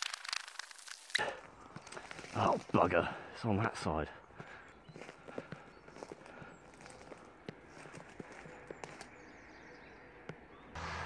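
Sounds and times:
twigs cracking and rustling: 0:00.0 - 0:03.2, 0:04.4 - 0:09.3.

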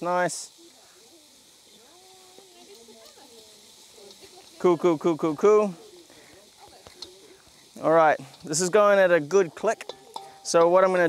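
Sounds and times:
faint distant voices: 0:00.0 - 0:11.0
low outdoor hiss: 0:00.0 - 0:11.0.

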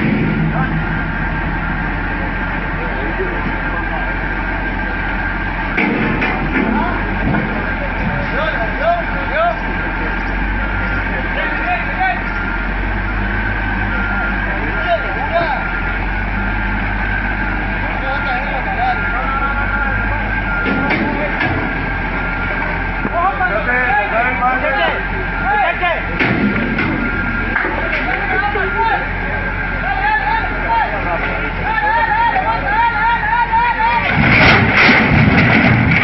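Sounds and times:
heavy diesel engine under load: 0:00.0 - 0:36.0.

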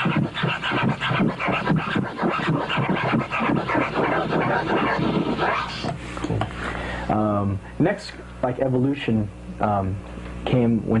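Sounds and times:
vinyl record scratching: 0:00.0 - 0:06.0.

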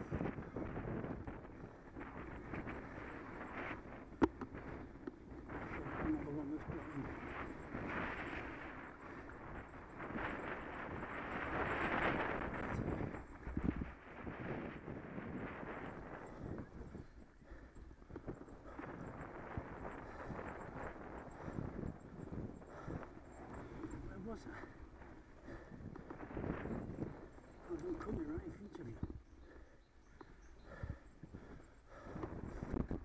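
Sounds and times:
bicycle tyre noise on tarmac: 0:00.0 - 0:33.0
bike rattling over bumps: 0:00.1 - 0:33.0.

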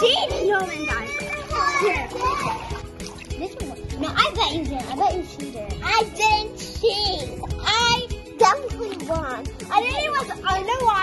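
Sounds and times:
children's excited voices: 0:00.0 - 0:02.8, 0:03.4 - 0:11.0
background music: 0:00.0 - 0:11.0.

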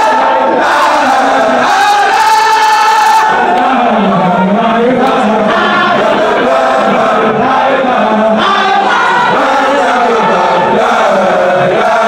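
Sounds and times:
crowd of men chanting: 0:00.0 - 0:12.0.

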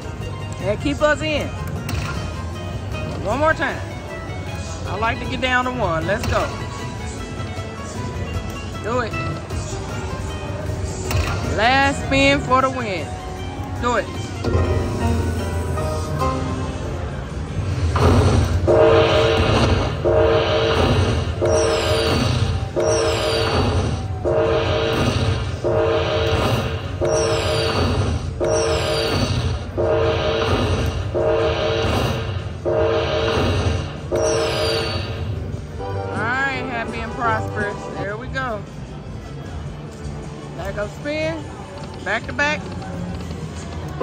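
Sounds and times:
low casino hum: 0:00.0 - 0:44.0
slot machine chimes: 0:18.9 - 0:26.4, 0:27.0 - 0:30.4, 0:32.7 - 0:38.0.

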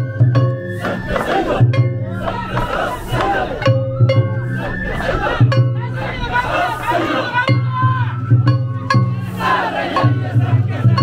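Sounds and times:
sharp percussion strikes: 0:00.0 - 0:04.6, 0:05.4 - 0:11.0
bamboo flutes playing melody: 0:00.0 - 0:11.0
crowd shouting together: 0:00.7 - 0:11.0.

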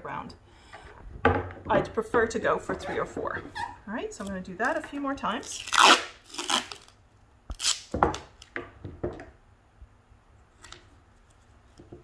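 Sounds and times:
duct tape ripping: 0:05.4 - 0:08.5.

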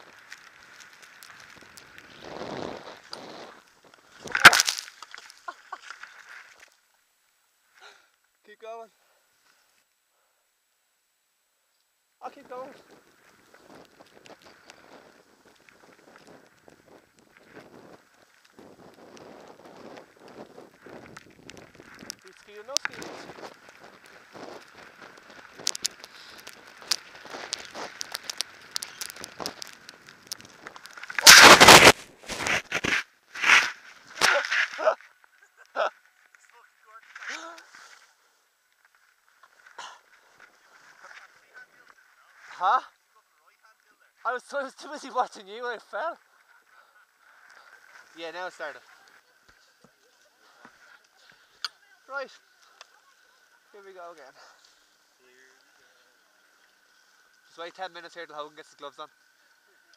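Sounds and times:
skis sliding over snow: 0:00.0 - 0:06.8, 0:12.2 - 0:59.9.

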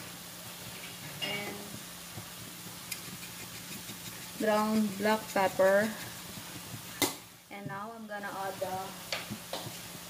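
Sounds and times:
food sizzling in a pan: 0:00.0 - 0:10.0
low steady hum: 0:00.0 - 0:10.0.

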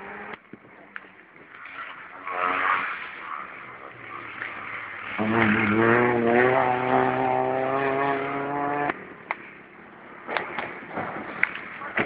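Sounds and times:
rally car engine at high revs: 0:00.0 - 0:00.4, 0:01.6 - 0:09.4.

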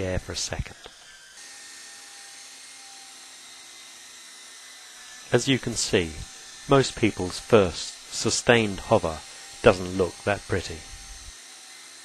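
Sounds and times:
electric model helicopter whine: 0:00.0 - 0:12.0.

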